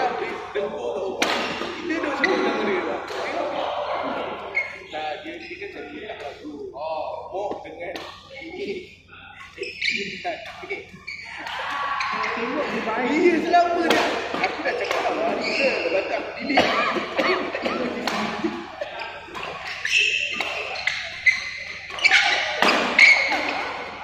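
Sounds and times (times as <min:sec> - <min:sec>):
people talking in echoing hall: 0:00.0 - 0:24.0.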